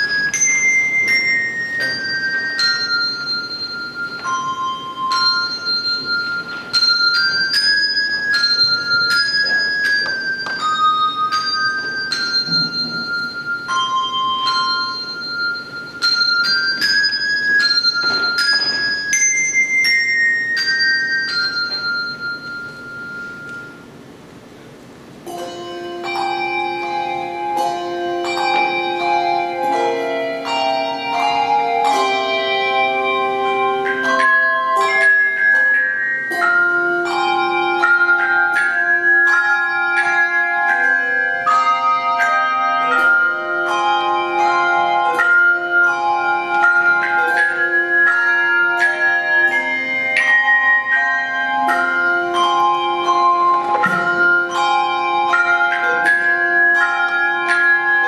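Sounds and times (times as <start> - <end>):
high handbell melody: 0.0 - 58.0
low bells holding chords: 0.0 - 58.0.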